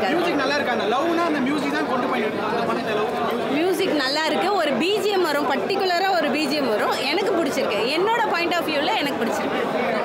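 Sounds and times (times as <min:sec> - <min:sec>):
crowd chatter: 0:00.0 - 0:10.0
woman talking: 0:03.5 - 0:09.4.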